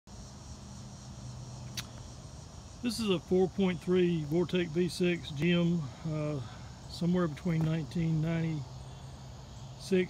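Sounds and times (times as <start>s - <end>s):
insects buzzing: 0.1s - 10.0s
sharp click: 1.7s - 2.0s.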